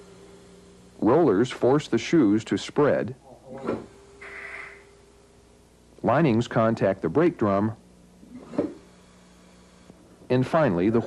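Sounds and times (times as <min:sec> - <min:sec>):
low steady hum: 0:00.0 - 0:11.0
soft hiss: 0:00.0 - 0:11.0.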